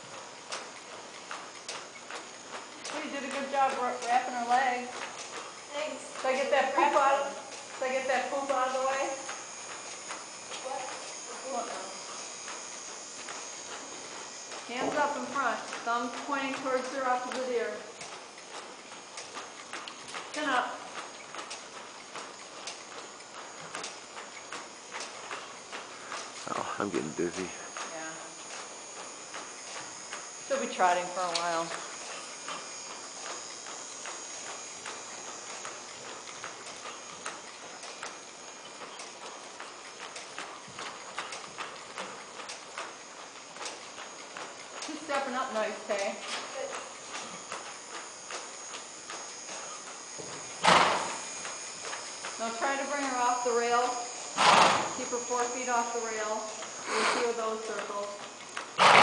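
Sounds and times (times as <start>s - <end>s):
horse hoofbeats on dirt: 50.2s - 51.3s.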